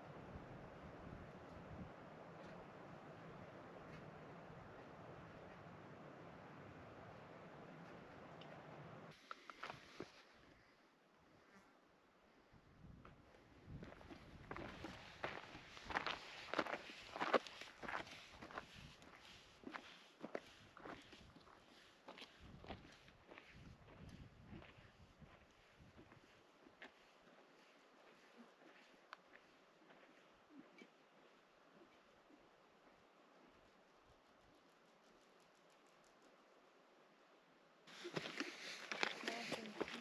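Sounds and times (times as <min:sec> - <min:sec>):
footsteps on gravel: 0:13.9 - 0:19.2, 0:37.9 - 0:40.0
rustling and clicks: 0:37.9 - 0:40.0.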